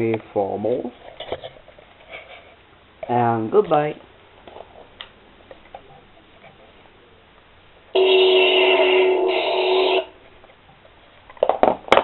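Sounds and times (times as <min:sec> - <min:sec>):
toy blaster electronic tone: 0:08.0 - 0:10.1.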